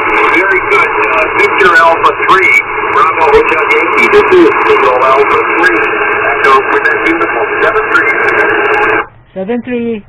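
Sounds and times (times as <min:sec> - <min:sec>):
man speaking: 0:00.0 - 0:08.6
radio static hiss: 0:00.0 - 0:09.1.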